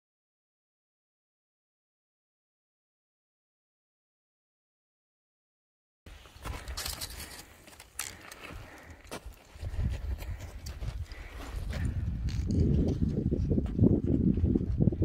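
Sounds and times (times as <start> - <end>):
footsteps crunching on scree: 6.1 - 14.6
trekking poles clicking on rock: 6.4 - 13.2
wind buffeting microphone: 9.5 - 15.0.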